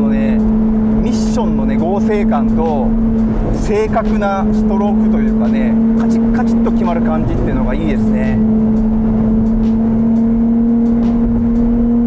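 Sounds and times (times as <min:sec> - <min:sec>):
car engine at steady speed: 0:00.0 - 0:12.0
wind and road noise: 0:00.0 - 0:12.0.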